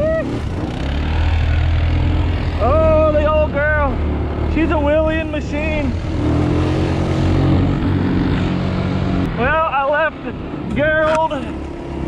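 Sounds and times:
quad engine drone: 0.0s - 12.0s.

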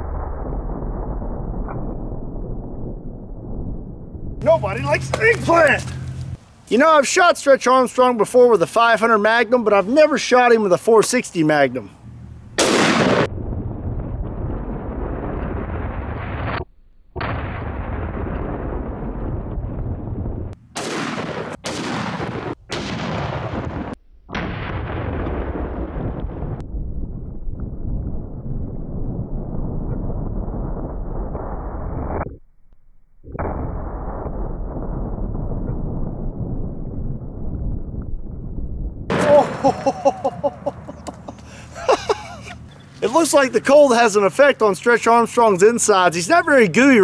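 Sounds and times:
slowed-down gunshot boom: 0.0s - 6.3s, 12.5s - 32.3s, 33.2s - 41.5s
sharp cracks: 4.4s - 7.0s, 12.1s - 13.4s, 20.5s - 26.6s, 39.1s - 46.1s.

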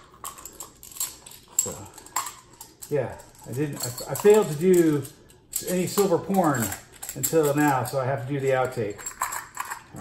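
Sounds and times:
man speaking: 2.8s - 9.1s.

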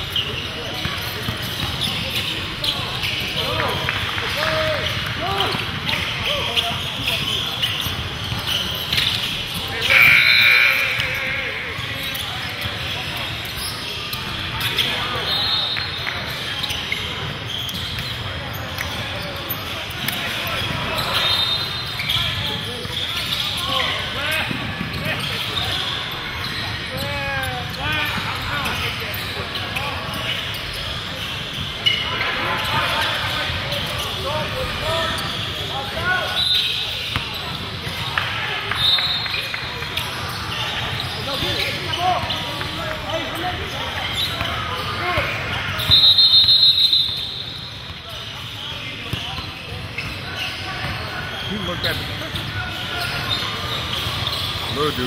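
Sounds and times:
people talking: 0.0s - 46.1s, 48.0s - 55.0s
sneakers squeaking: 0.0s - 55.0s
brief shrill tone: 9.8s - 11.0s
basketball bouncing on court: 24.4s - 25.5s.

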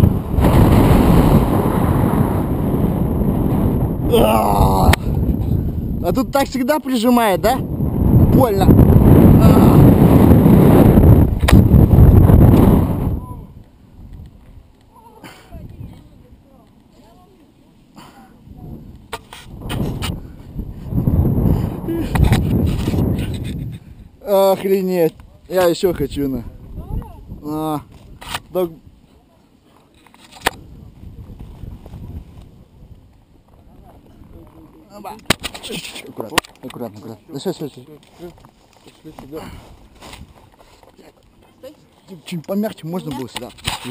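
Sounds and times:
wind buffeting microphone: 0.0s - 14.7s, 18.4s - 24.2s, 25.1s - 29.0s, 30.5s - 35.4s.

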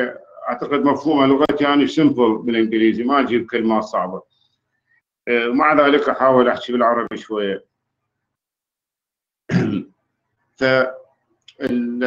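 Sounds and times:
man clearing his throat: 9.5s - 9.9s.

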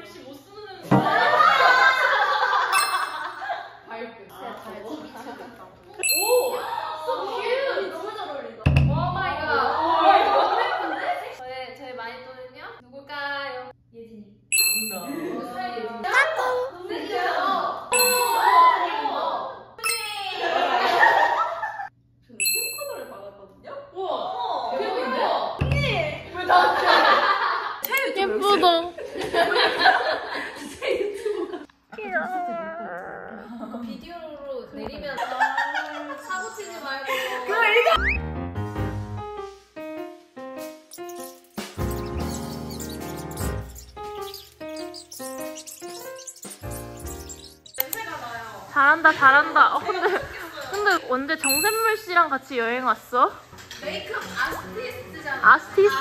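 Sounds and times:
women talking and laughing: 0.0s - 11.6s, 14.9s - 21.9s, 24.0s - 38.0s, 47.8s - 52.2s, 53.8s - 56.0s
bright bell ding: 2.8s - 3.5s, 6.0s - 6.8s, 14.5s - 15.2s, 18.0s - 18.6s, 19.8s - 20.3s, 22.4s - 23.2s, 51.4s - 52.0s
women talking and exclaiming: 31.9s - 38.0s, 47.8s - 56.0s.

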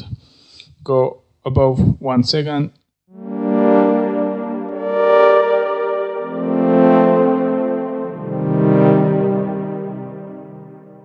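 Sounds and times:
synth horn chords: 3.1s - 11.0s.

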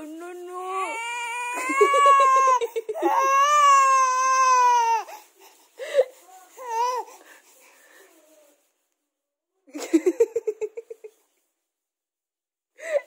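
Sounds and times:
baby crying: 0.6s - 5.3s.

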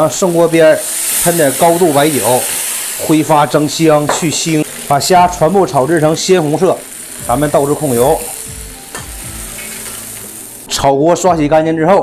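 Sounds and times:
person speaking: 0.0s - 8.4s
hot oil sizzling in colander: 0.0s - 11.0s.

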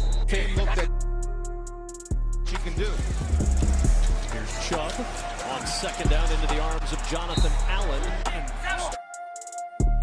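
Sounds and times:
hip hop music with bass beat: 0.0s - 10.0s.

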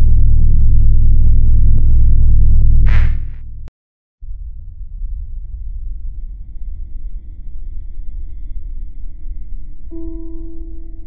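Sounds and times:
deep rumbling drone: 0.0s - 11.0s.

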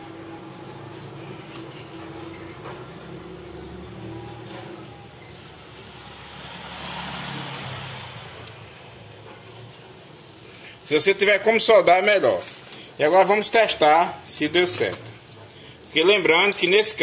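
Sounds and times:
low engine and traffic noise: 0.0s - 10.8s.

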